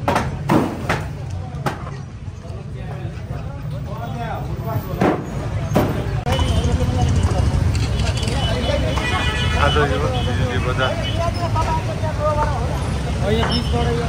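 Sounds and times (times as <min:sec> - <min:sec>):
sharp knocks: 0:00.0 - 0:01.9
voices talking: 0:00.0 - 0:14.0
motorcycle and car engines: 0:03.5 - 0:09.0.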